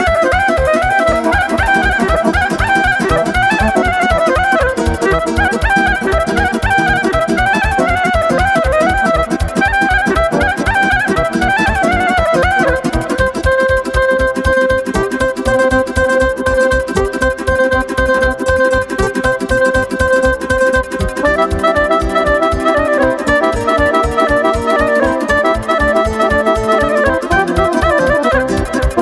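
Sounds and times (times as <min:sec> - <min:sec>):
folk dance music: 0:00.0 - 0:29.0
plucked strings: 0:00.0 - 0:29.0
violin melodic runs: 0:00.0 - 0:29.0.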